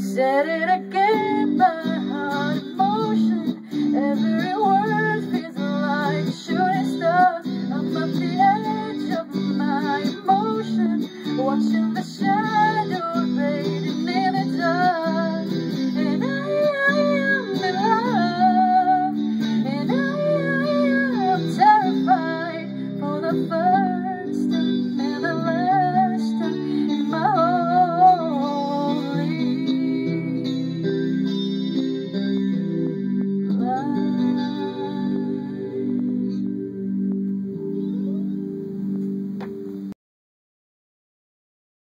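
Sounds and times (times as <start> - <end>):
woman singing: 0.0 - 31.4, 33.4 - 37.3
electric guitar chords: 0.0 - 40.0.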